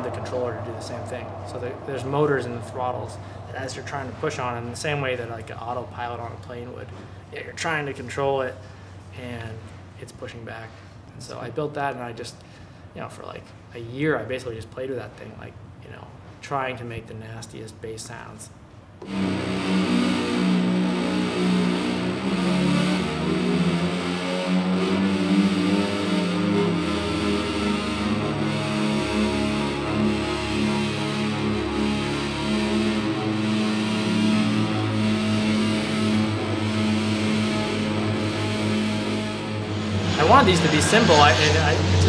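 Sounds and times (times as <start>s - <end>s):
electronic bass drone: 0.0s - 9.9s, 19.0s - 42.0s.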